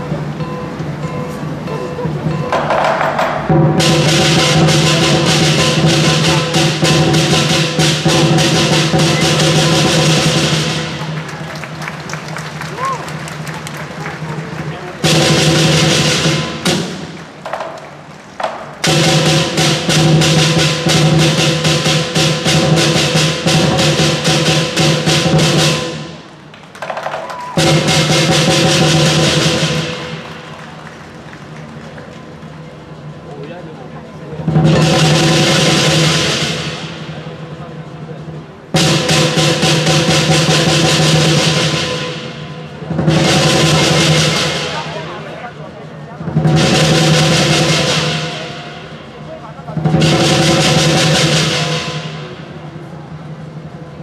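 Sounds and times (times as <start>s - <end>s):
gong ringing: 0.0s - 11.1s
ringing cymbals: 0.0s - 11.1s
fast drum rolls: 2.1s - 54.0s.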